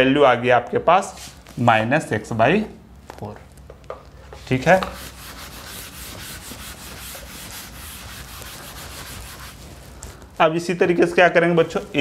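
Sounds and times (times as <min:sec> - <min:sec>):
chalk eraser rubbing chalkboard: 0:04.4 - 0:09.8.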